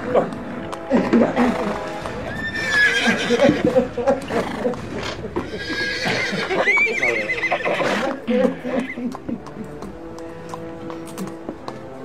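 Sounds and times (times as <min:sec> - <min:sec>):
horse whinnying: 0:01.1 - 0:09.2.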